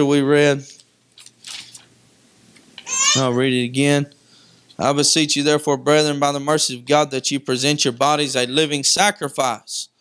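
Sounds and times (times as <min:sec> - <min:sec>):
man talking: 0:00.0 - 0:00.8, 0:03.0 - 0:04.2, 0:04.8 - 0:10.0
pages rustling: 0:00.6 - 0:01.9.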